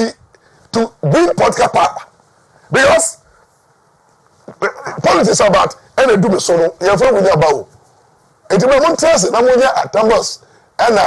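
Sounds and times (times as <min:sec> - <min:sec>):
man speaking: 0:00.0 - 0:02.1, 0:02.7 - 0:03.2, 0:04.5 - 0:07.7, 0:08.5 - 0:11.0.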